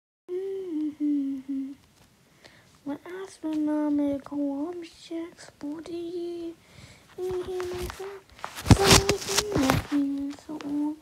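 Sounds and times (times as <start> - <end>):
person humming held notes: 0.3 - 1.8.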